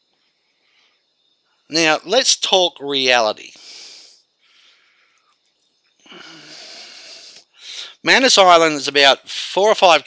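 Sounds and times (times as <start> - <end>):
breath drawn on cigarette: 3.6 - 4.2, 6.1 - 8.0.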